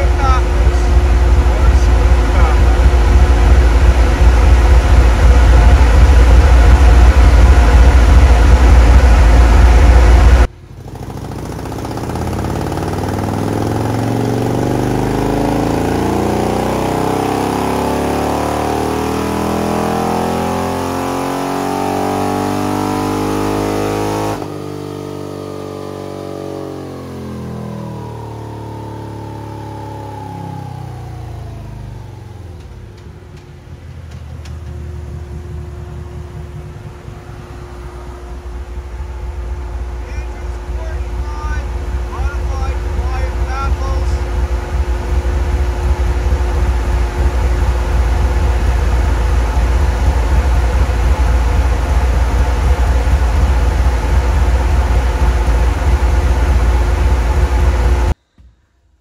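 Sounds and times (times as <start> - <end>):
loud low rumble: 0.0 - 19.9, 26.8 - 58.5
motorcycle engine revving on a dyno: 0.0 - 58.2.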